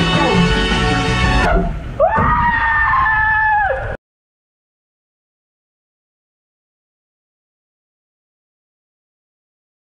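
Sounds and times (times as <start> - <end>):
background music: 0.0 - 1.9
long high-pitched scream: 2.0 - 4.0.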